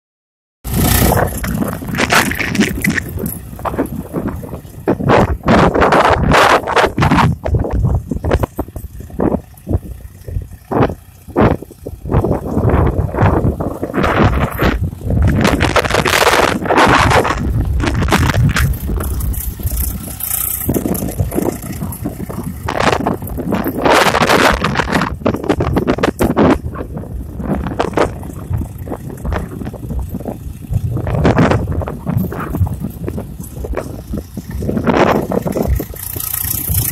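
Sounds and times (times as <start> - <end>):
tractor diesel engine under load: 0.6 - 36.9
wind buffeting microphone: 0.7 - 36.9.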